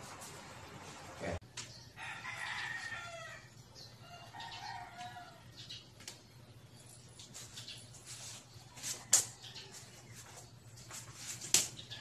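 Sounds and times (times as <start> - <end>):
rooster crowing: 2.0 - 5.5.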